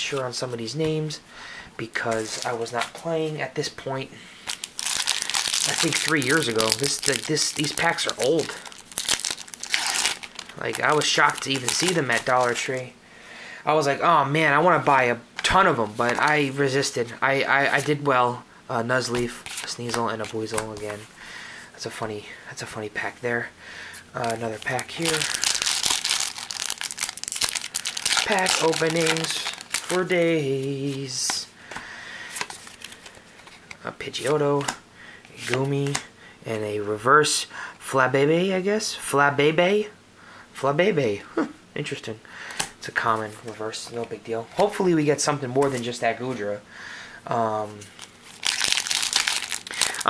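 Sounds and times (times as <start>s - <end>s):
foil wrapper crinkling and tearing: 4.5s - 12.6s, 24.2s - 30.1s, 47.8s - 50.0s.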